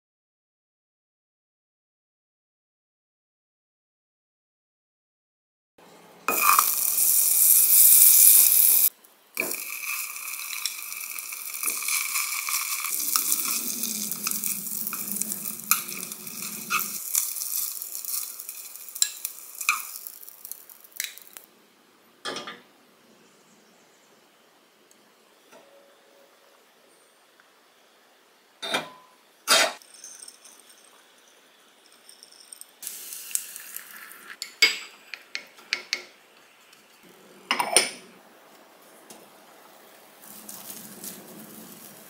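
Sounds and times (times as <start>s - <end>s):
butter sizzling in a pan: 6.3s - 21.5s, 32.8s - 35.2s.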